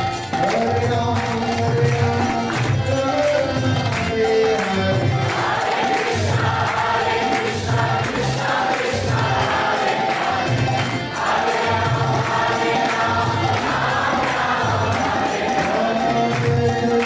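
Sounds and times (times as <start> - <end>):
hand cymbals striking a beat: 0.0 - 17.0
harmonium: 0.0 - 17.0
group chanting: 4.6 - 17.0.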